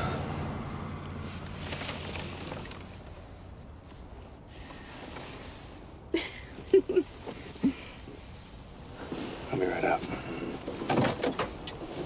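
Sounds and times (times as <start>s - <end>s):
clicks and rustles in a car: 1.3s - 5.8s, 9.1s - 12.0s.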